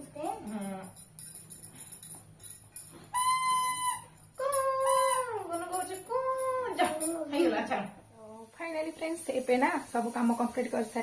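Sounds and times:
high-pitched howling calls: 3.1s - 5.4s.

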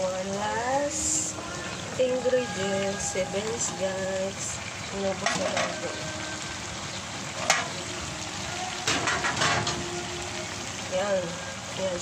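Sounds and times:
vegetables sizzling in a pan: 0.0s - 12.0s.

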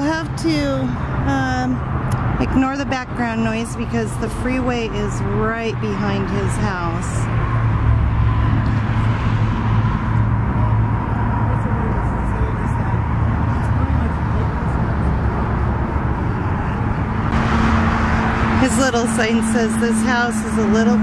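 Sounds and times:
freeway traffic rumble: 0.0s - 21.0s.

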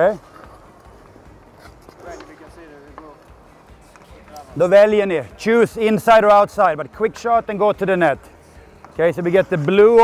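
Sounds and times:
ice rink ambience: 0.0s - 10.0s
man speaking: 4.3s - 8.2s, 9.0s - 10.0s.

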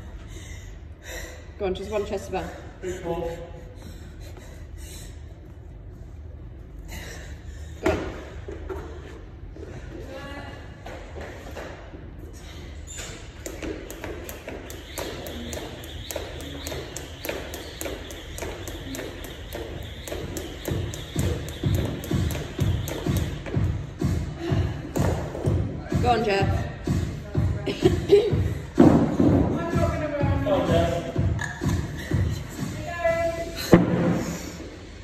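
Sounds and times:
jump rope ticking on floor: 13.4s - 23.6s
music with heavy bass beat: 18.3s - 32.9s.

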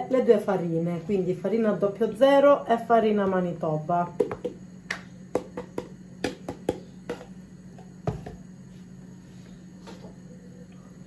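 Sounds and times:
plastic tubs tapping bowl rim: 5.4s - 7.4s.

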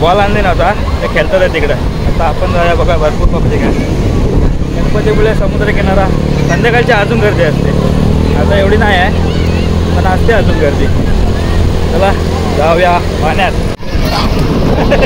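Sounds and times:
man talking: 0.0s - 4.0s, 4.6s - 9.2s, 9.9s - 11.2s, 11.8s - 13.8s.

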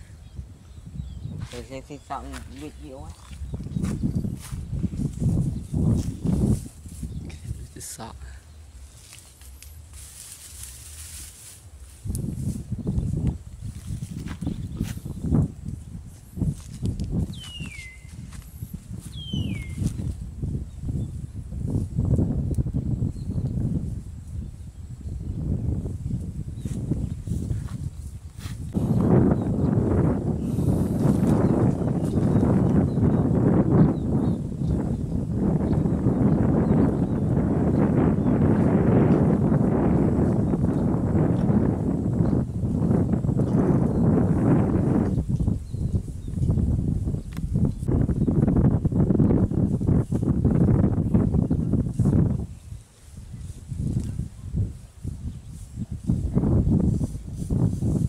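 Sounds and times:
grass being torn and chewed: 8.8s - 19.2s.

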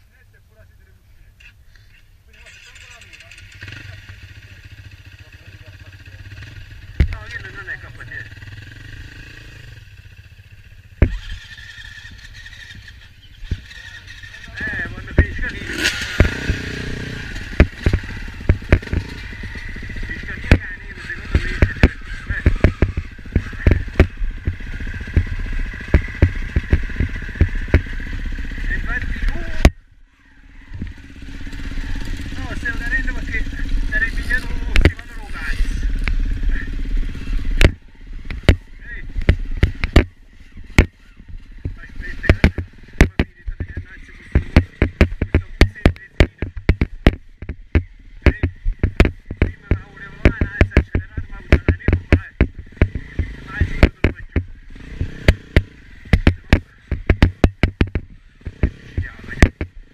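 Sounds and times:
dirt bike engine running: 2.3s - 59.9s
knocks and rattles from bike: 2.4s - 29.9s, 30.6s - 59.9s.

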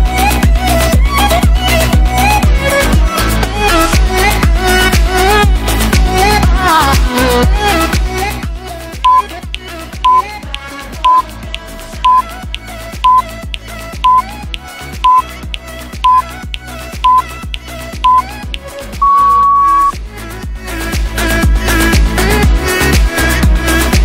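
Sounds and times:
longer timer beep: 9.0s - 9.3s, 10.0s - 10.2s, 11.0s - 11.2s, 12.0s - 12.3s, 13.0s - 13.3s, 14.0s - 14.3s, 15.0s - 15.3s, 16.0s - 16.3s, 17.0s - 17.3s, 18.0s - 18.3s, 19.0s - 19.9s
short high timer beeps: 9.1s - 9.3s, 12.0s - 12.2s, 13.0s - 13.2s, 14.0s - 14.2s, 15.0s - 15.2s, 16.0s - 16.3s, 17.0s - 17.3s, 18.0s - 18.3s, 19.0s - 19.9s
dance music: 13.1s - 20.0s.

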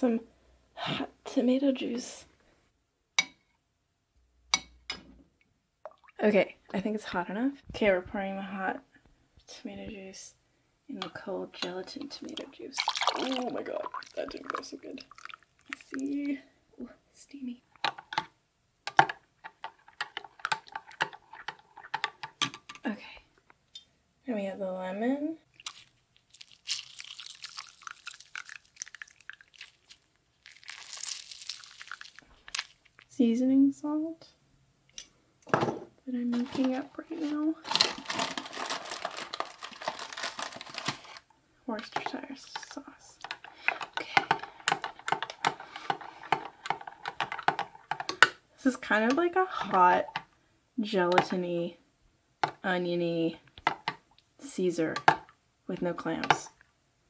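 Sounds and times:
lemon crunching and clicking by hand: 25.6s - 33.1s.

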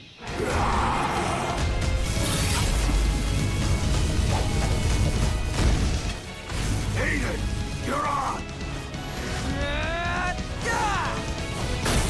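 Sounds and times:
dramatic orchestral score: 0.0s - 12.0s.

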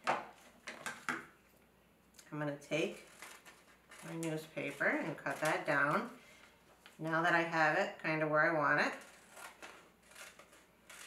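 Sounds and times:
scissors snipping newspaper: 3.0s - 6.0s, 8.8s - 11.0s.

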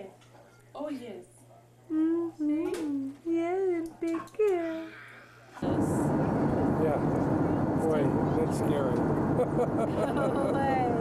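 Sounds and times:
airliner cabin noise: 5.6s - 11.0s.

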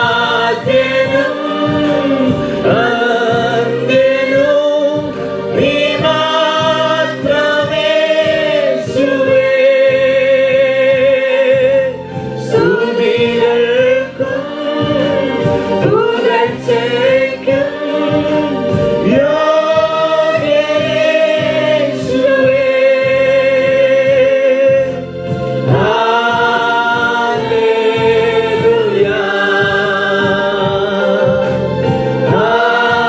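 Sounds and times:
congregation singing: 0.0s - 33.0s.

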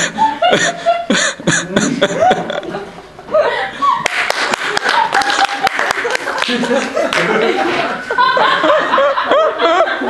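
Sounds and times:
audience laughing: 0.0s - 10.0s
audience clapping: 4.0s - 7.5s.

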